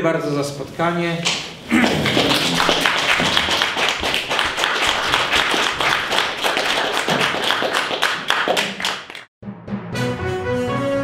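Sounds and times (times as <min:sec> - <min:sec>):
audience applauding: 0:01.7 - 0:09.3.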